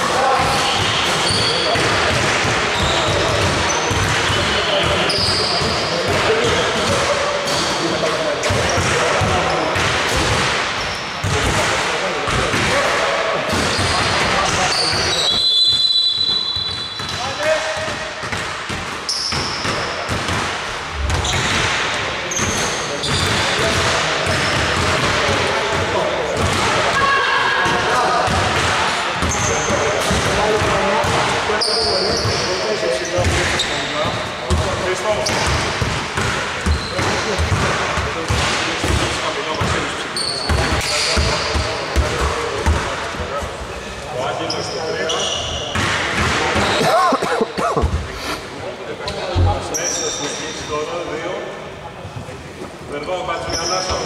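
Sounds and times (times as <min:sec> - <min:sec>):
basketballs bouncing on court floor: 0:00.4 - 0:07.7, 0:08.4 - 0:12.8, 0:13.5 - 0:32.4, 0:33.2 - 0:42.9.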